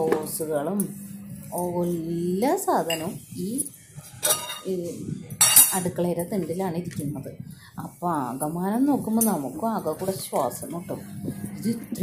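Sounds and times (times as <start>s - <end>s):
woman's voice: 0.0s - 3.8s, 4.6s - 12.0s
steel pots and lid clattering: 4.2s - 4.7s.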